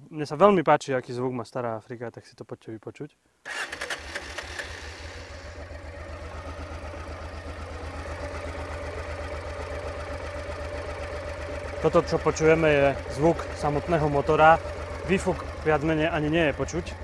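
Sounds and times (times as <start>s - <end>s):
motorcycle engine idling: 4.0s - 17.0s.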